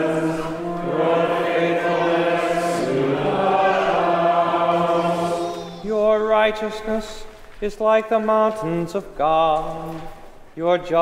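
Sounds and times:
choir chanting held notes: 0.0 - 7.2
single voice chanting: 0.0 - 7.3.

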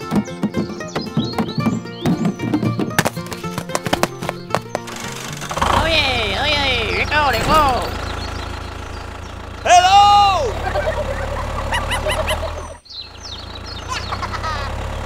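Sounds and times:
tractor engine rumble: 0.0 - 15.0
cartoon voices squealing: 9.7 - 12.8.

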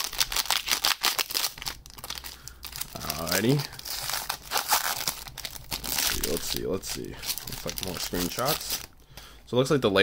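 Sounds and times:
foil crinkling crackle: 0.0 - 9.0
foil wrapper crinkling: 0.0 - 9.0.

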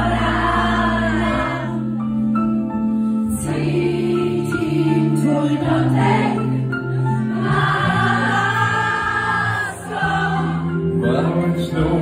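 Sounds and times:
voices singing together: 0.0 - 2.0, 3.3 - 12.0.

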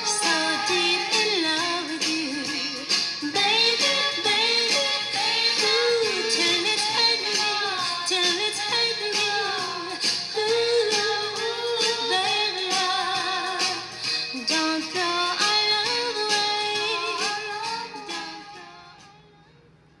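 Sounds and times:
pop song with female vocal: 0.0 - 19.4.

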